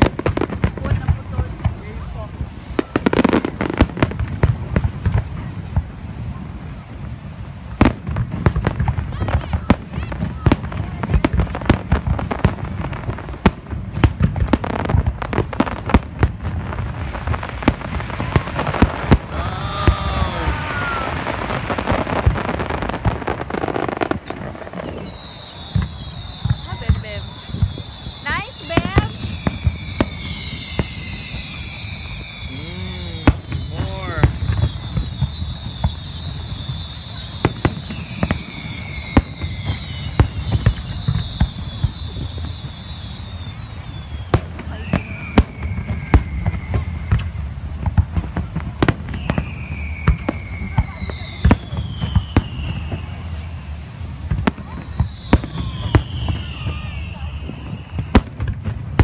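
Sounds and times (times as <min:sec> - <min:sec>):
fireworks bangs: 0:00.0 - 0:59.0
fireworks crackle: 0:00.0 - 0:59.0
falling whistles: 0:17.0 - 0:47.4, 0:48.8 - 0:59.0.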